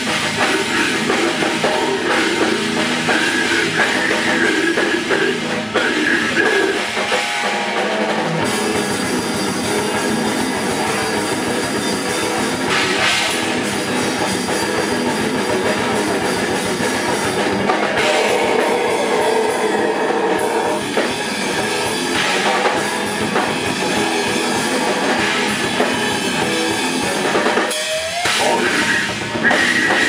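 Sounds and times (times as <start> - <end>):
death metal band playing: 0.0 - 30.0
distorted guitars: 0.0 - 30.0
rapid drumming: 0.0 - 30.0.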